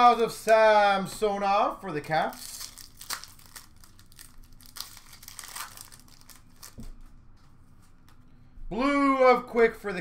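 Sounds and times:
wrapper tearing and crinkling: 2.3 - 6.9.

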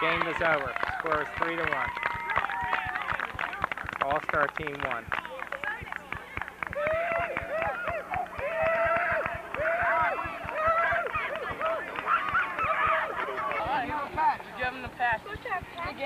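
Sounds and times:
children cheering and shouting: 1.7 - 3.1, 6.7 - 13.8.

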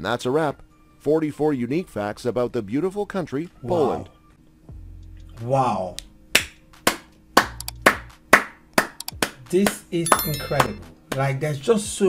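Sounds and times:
hand claps: 6.4 - 11.3.

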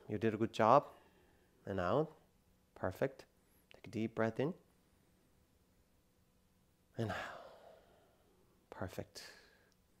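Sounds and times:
man speaking: 0.0 - 4.7, 6.9 - 7.6, 8.7 - 9.6
man exhaling: 7.0 - 8.4.

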